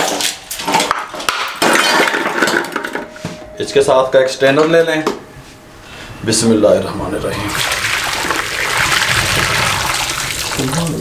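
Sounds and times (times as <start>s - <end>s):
ice clattering in metal bowl: 0.0s - 3.0s.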